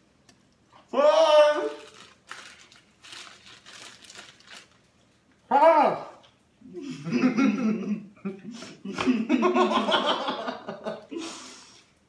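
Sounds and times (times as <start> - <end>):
plastic bag crinkling: 1.7 - 5.3.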